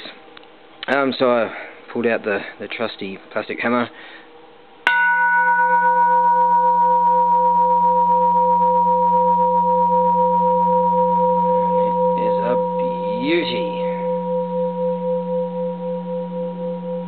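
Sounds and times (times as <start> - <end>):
large temple bell ringing: 4.9 - 17.0.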